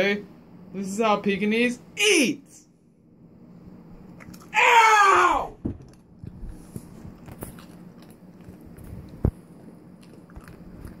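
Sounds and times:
dog chewing a treat: 6.9s - 11.0s.

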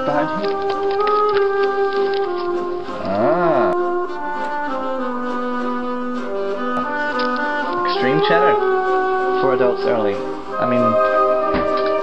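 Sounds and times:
instrumental music with long held notes: 0.0s - 12.0s.

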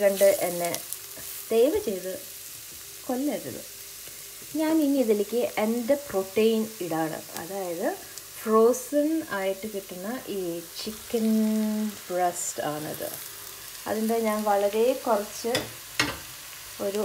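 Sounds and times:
onions sizzling in a pot: 0.0s - 17.0s.

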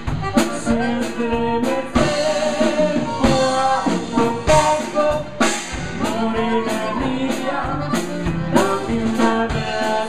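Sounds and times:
button accordion: 0.0s - 10.0s
drum kit: 0.0s - 10.0s
electric bass: 0.0s - 10.0s
person singing: 0.4s - 10.0s.

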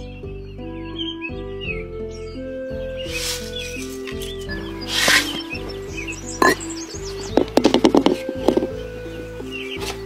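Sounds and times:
background music held notes: 0.0s - 10.0s.

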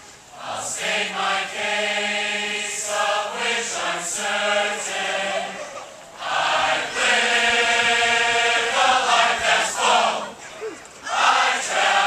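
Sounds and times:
marching band singing in chorus: 0.3s - 10.4s, 11.0s - 12.0s.

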